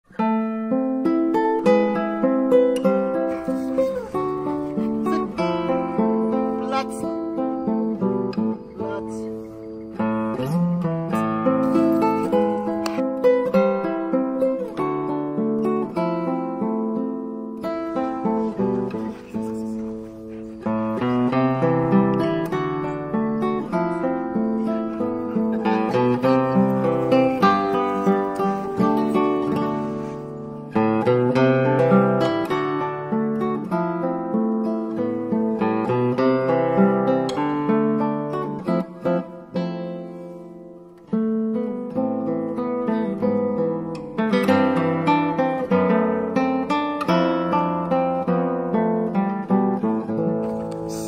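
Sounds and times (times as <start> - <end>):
plucked acoustic guitar: 0.1 - 51.0.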